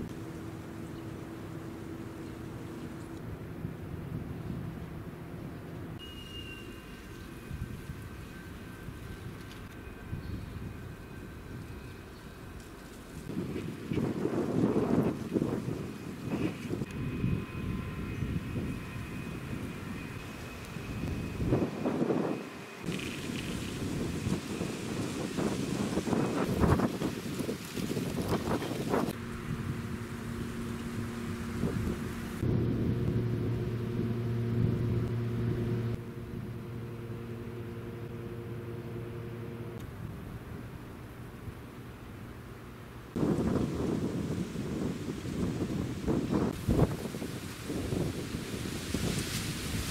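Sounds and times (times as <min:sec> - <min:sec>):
low machine hum: 0:00.0 - 0:47.0
wind rumbling on microphone: 0:13.0 - 0:42.4, 0:43.0 - 0:49.9.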